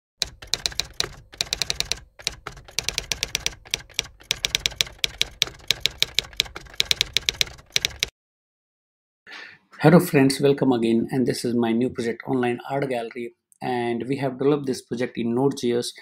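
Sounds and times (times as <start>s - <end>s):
typewriter key strikes: 0.2s - 8.1s.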